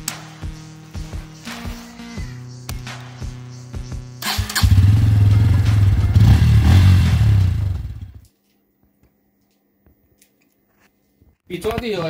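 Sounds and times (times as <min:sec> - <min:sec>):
background music: 0:00.0 - 0:08.2
motorcycle engine starting and running: 0:04.2 - 0:08.2.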